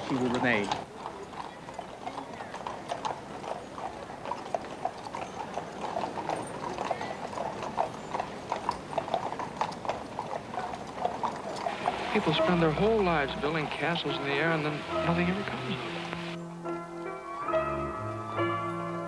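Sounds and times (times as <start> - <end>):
horse hooves clip-clopping on road: 0.0 - 16.4.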